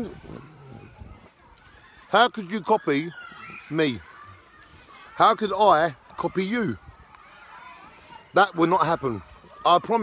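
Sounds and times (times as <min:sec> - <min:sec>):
faint outdoor background sound: 0:00.0 - 0:10.0.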